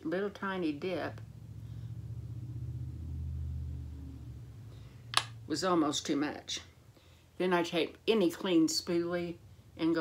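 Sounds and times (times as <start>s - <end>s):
low rumble: 0.8s - 5.8s.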